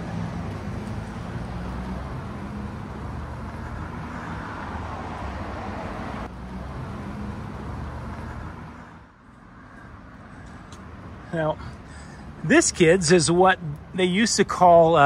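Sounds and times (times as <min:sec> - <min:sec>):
car engines humming: 0:00.0 - 0:15.0
tyres on road: 0:00.0 - 0:15.0.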